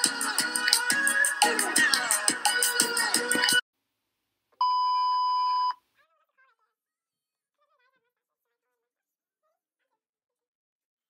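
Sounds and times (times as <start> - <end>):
electronic beep: 4.6 - 5.8.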